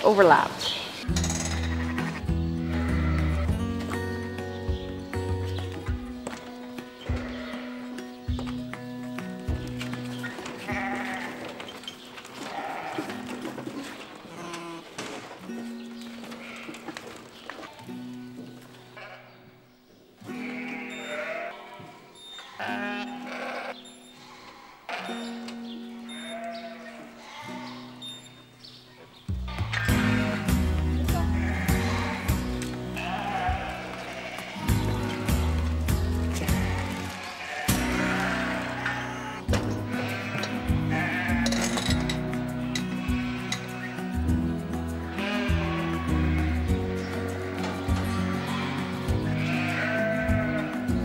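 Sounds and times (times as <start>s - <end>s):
background music with steady beat: 1.0s - 11.4s, 29.3s - 51.0s
lambs bleating: 1.2s - 3.6s, 7.0s - 8.0s, 10.2s - 11.6s, 12.4s - 13.2s, 14.3s - 14.9s, 16.4s - 17.0s, 19.0s - 19.4s, 20.3s - 28.0s, 29.5s - 44.1s, 45.1s - 50.9s.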